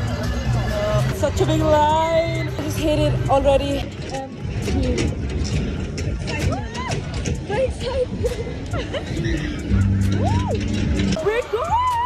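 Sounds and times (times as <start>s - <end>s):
noisy crowd: 0.0s - 12.0s
footsteps on metal stairs: 3.8s - 9.0s.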